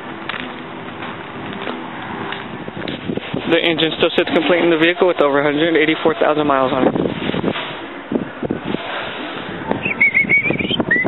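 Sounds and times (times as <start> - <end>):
bird high wavering call: 9.8 - 11.0.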